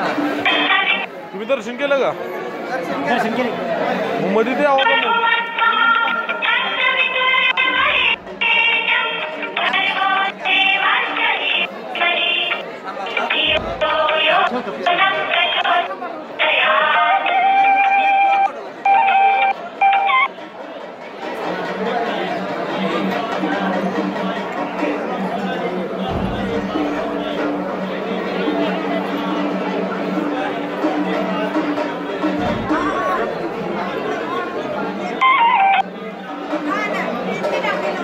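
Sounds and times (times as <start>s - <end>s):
crowd chattering: 0.0s - 38.0s.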